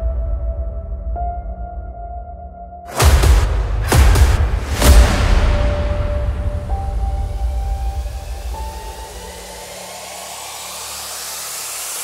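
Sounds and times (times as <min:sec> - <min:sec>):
rushing noise riser: 0:02.9 - 0:12.0.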